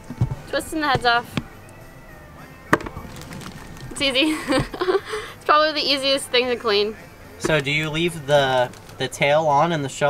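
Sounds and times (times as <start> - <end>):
faint crackles: 2.8 - 4.1, 8.4 - 9.0.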